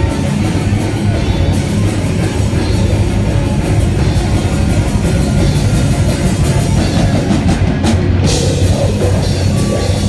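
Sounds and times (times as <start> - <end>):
electric guitar: 0.0 - 10.0
fast drum and cymbal strokes: 0.0 - 10.0
heavy metal band playing live: 0.0 - 10.0.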